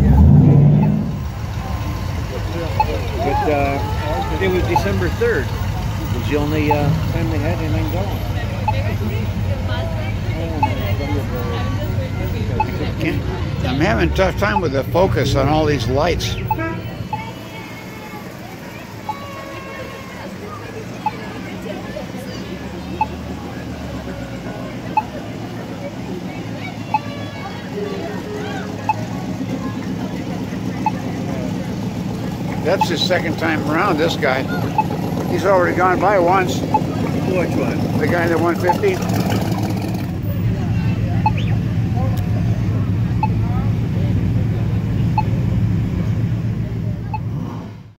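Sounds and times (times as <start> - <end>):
faint onlooker voices: 0.0 - 47.9
pickup truck engines rumbling: 0.0 - 48.0.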